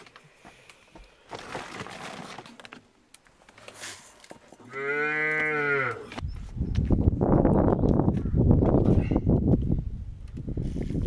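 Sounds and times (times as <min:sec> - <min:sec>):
cow mooing: 0:04.7 - 0:06.1.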